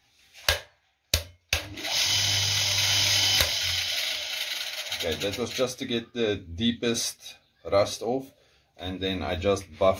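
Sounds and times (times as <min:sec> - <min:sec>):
bench grinder motor whining: 0:01.7 - 0:05.6.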